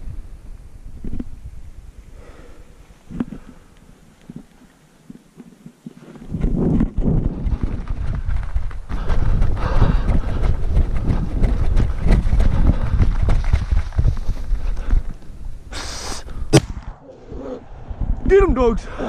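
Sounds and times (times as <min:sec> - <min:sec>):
wind rumble on microphone: 0:00.0 - 0:02.3, 0:05.9 - 0:15.7, 0:16.4 - 0:19.0
rapid heavy footfalls: 0:06.4 - 0:15.1.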